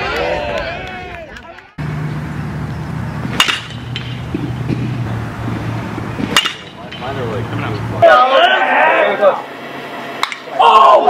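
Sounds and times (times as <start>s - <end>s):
baseball bat hitting balls: 1.8s - 8.1s, 10.2s - 10.6s
steady low hum: 1.8s - 11.0s.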